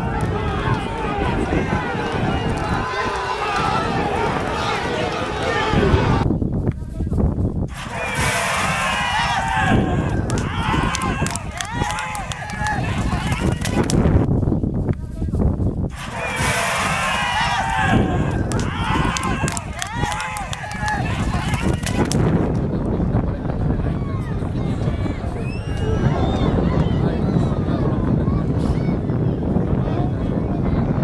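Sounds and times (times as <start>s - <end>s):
voices shouting: 0.0s - 6.2s, 7.7s - 14.1s, 15.9s - 22.3s
steady low rumble: 0.0s - 31.0s
sharp clicks: 10.1s - 14.0s, 18.3s - 22.2s.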